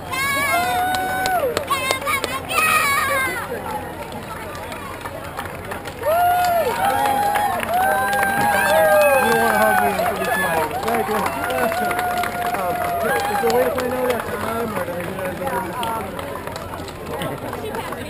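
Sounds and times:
crowd chatter: 0:00.0 - 0:18.0
spectators shouting and cheering: 0:00.0 - 0:18.0.

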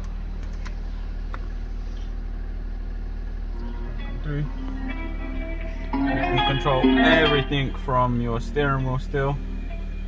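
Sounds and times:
car engine idling: 0:00.0 - 0:10.0
music from car stereo: 0:03.5 - 0:10.0.

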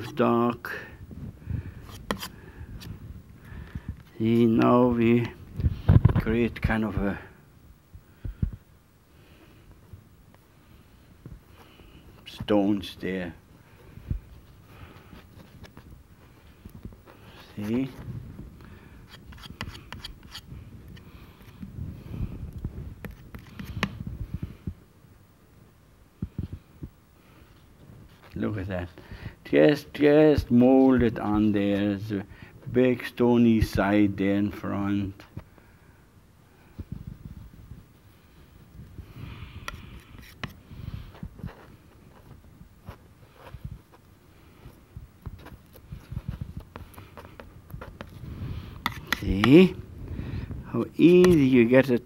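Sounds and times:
brush scraping oil paint: 0:01.7 - 0:03.0, 0:10.6 - 0:18.2, 0:18.8 - 0:24.4, 0:37.2 - 0:49.9, 0:50.6 - 0:52.0
palette knife dragging paint: 0:19.0 - 0:20.5, 0:39.6 - 0:44.0, 0:45.4 - 0:49.8.

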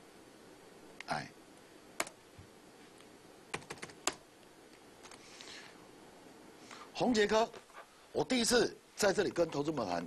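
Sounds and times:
computer keyboard keystrokes: 0:03.5 - 0:04.2.

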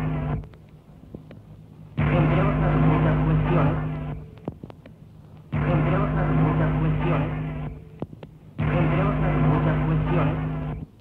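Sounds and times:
tape hiss and hum: 0:00.0 - 0:11.0
faint voice in noise: 0:02.0 - 0:04.5.

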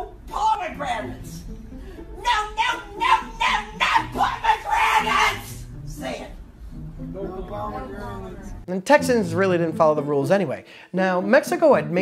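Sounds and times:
woman shrieking: 0:02.1 - 0:05.7.

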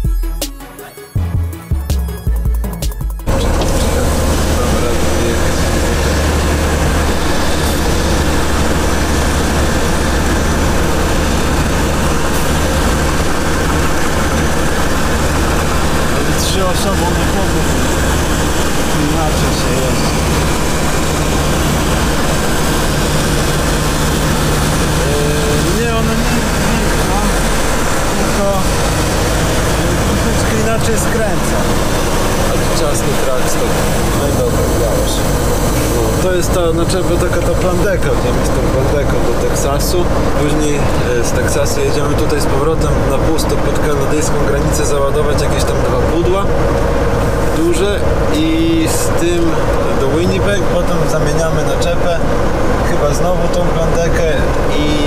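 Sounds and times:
truck diesel engine droning: 0:00.0 - 0:55.0.

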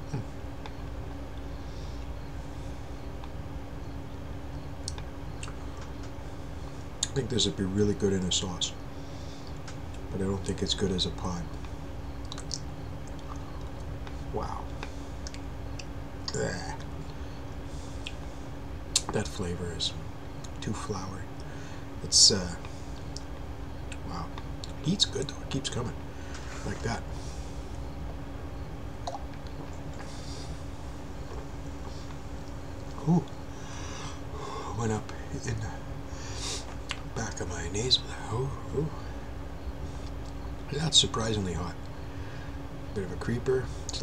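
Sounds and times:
steady low hum: 0:00.0 - 0:44.0
mouth clicks and lip smacks: 0:04.8 - 0:05.6, 0:12.2 - 0:13.9, 0:14.7 - 0:15.9, 0:18.9 - 0:19.1, 0:23.9 - 0:24.8, 0:29.0 - 0:30.1, 0:36.7 - 0:37.1.

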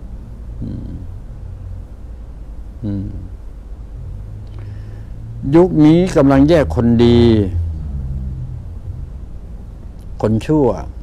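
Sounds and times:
low background rumble: 0:00.0 - 0:11.0
man speaking: 0:00.6 - 0:01.1, 0:02.8 - 0:03.4, 0:05.4 - 0:07.6, 0:10.2 - 0:10.9.

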